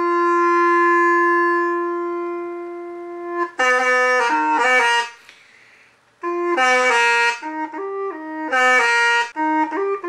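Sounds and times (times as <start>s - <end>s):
bamboo flute long note: 0.0s - 5.2s.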